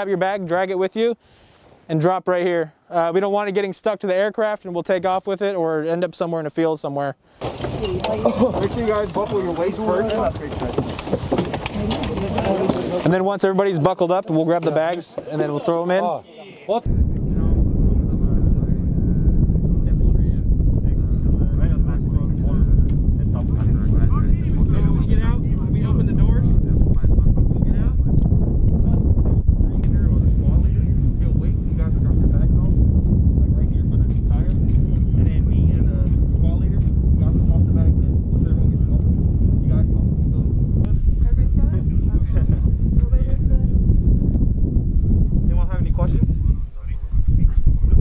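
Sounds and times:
man talking: 1.9 - 7.2, 8.0 - 10.8, 12.3 - 19.0, 19.6 - 28.2, 29.7 - 39.1
wind buffeting microphone: 7.4 - 13.4, 16.8 - 48.0.

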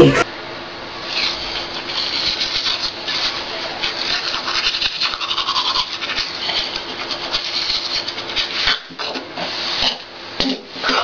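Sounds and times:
toothbrush scrubbing teeth: 1.1 - 10.0.

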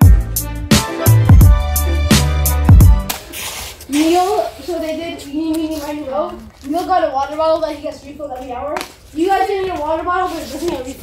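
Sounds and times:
background music: 0.0 - 3.3
rustling hiss: 3.1 - 6.9.

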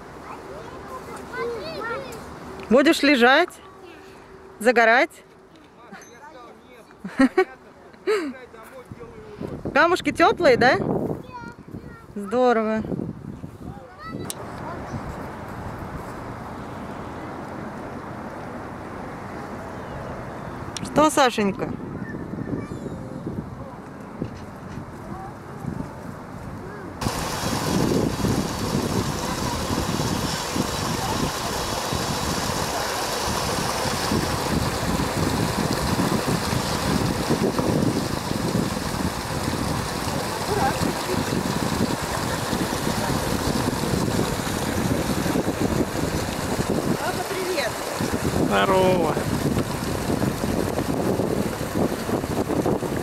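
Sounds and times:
water tumbling over rocks: 27.0 - 53.0.

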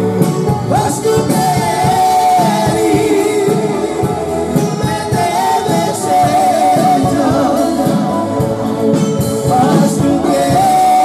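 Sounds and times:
band music: 0.0 - 11.0.

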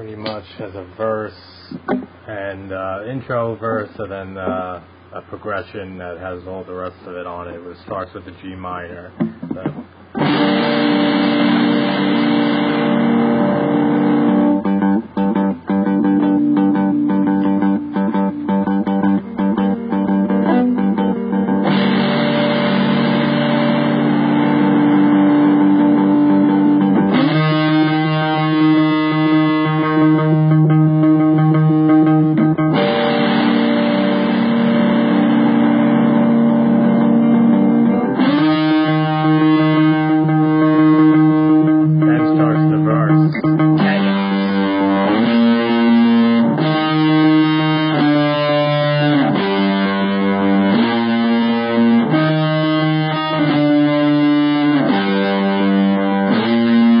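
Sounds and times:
guitar chords: 0.0 - 5.3, 9.0 - 57.0.

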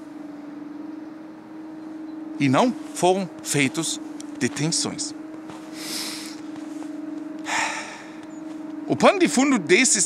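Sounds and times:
steady low hum: 0.0 - 10.0
man reading aloud: 2.4 - 5.2, 8.9 - 10.0
man's sharp intake of breath: 5.8 - 6.4, 7.5 - 8.2.

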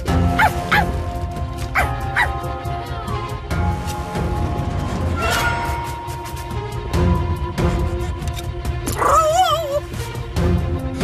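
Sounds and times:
background music: 0.0 - 11.0
cartoon dog yelping: 9.0 - 9.8.

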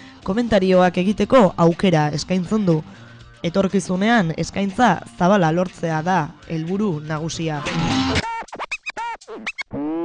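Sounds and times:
swooping pitched chirps: 7.6 - 10.0.

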